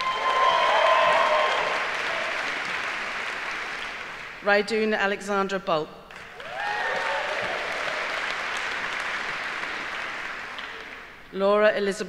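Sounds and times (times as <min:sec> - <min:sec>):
audience applauding: 0:00.0 - 0:04.4, 0:06.1 - 0:11.2.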